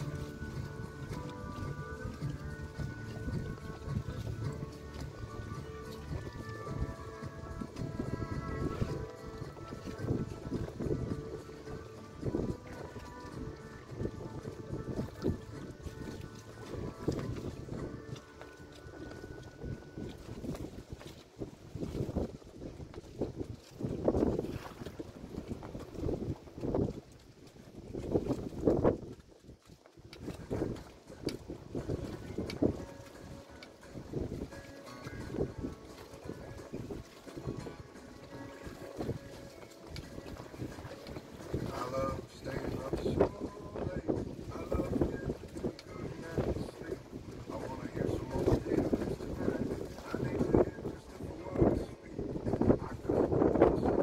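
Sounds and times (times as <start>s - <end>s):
faint music with held tones: 0.0s - 21.2s, 30.2s - 54.0s
gusty wind on microphone: 0.0s - 54.0s.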